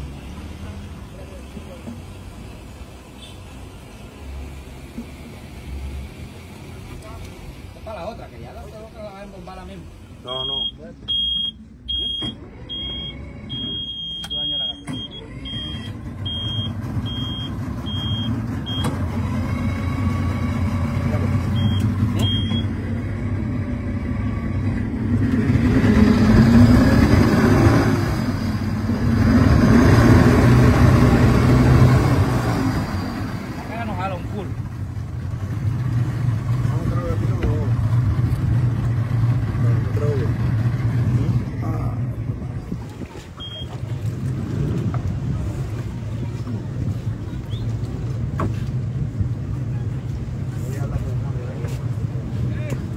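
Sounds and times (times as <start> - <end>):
high-pitched warning beep: 10.3 - 18.9, 21.6 - 22.7
outboard motors running: 12.0 - 52.9.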